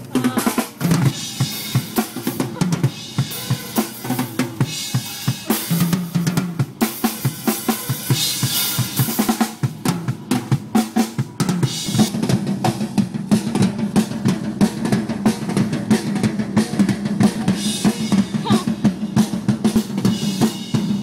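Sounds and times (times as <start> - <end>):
fast drum kit playing: 0.0 - 21.0.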